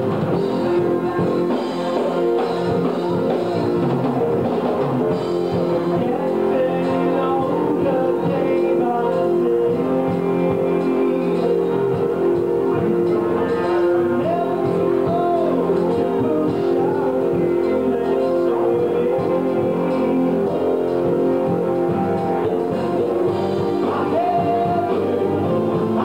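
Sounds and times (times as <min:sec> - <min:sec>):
drum kit: 0:00.0 - 0:26.0
electric guitars: 0:00.0 - 0:26.0
keyboard: 0:00.0 - 0:26.0.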